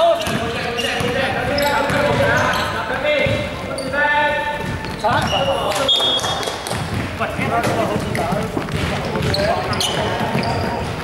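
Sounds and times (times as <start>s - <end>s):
players' voices: 0.0s - 11.0s
basketball bouncing on hardwood: 0.2s - 2.6s, 3.2s - 3.6s, 4.6s - 5.4s, 6.0s - 11.0s.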